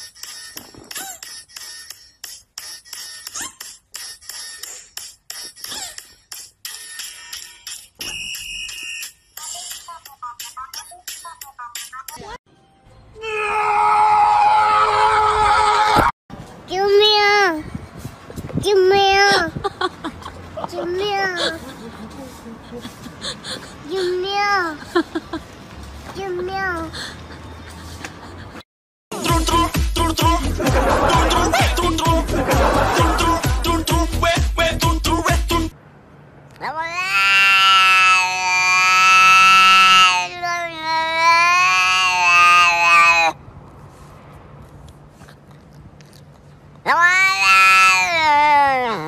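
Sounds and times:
cat yowling: 36.6s - 43.4s, 46.8s - 49.0s.

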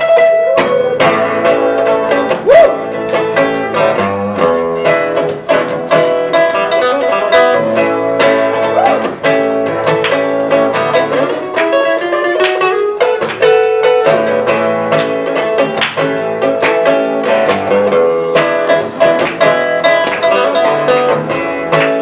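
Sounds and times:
fingerpicked blues acoustic guitar: 0.0s - 22.0s.

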